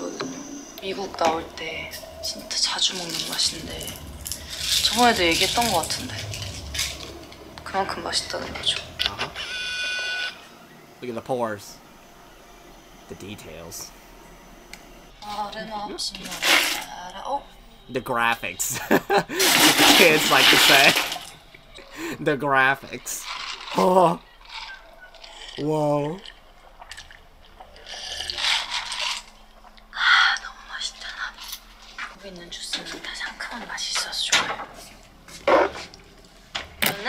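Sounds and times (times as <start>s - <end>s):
electronic whirr: 0.0s - 18.0s
person slurping drink: 26.9s - 29.2s.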